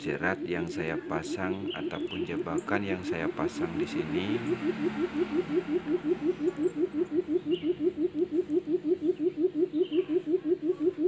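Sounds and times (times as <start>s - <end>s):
quail calling: 0.0s - 11.0s.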